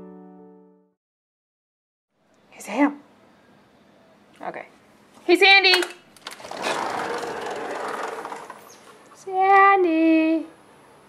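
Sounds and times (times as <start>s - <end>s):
sliding door rolling along track: 6.2s - 9.2s.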